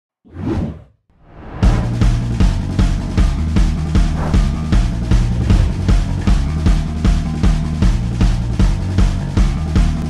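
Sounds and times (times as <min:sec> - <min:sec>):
music with drum-kit beat: 0:01.8 - 0:10.0
whoosh sound effects: 0:04.1 - 0:06.6.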